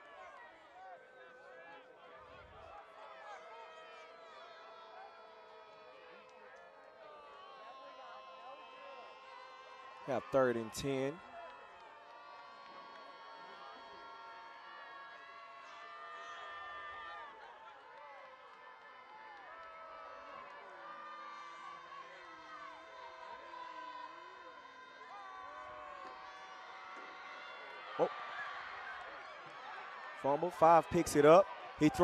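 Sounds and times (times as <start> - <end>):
crowd calling and cheering: 0.0 - 32.0.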